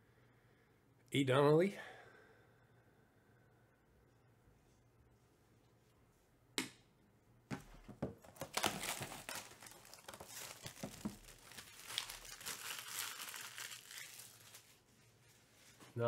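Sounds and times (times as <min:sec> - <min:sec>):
plastic shrink wrap tearing: 0:08.3 - 0:14.8.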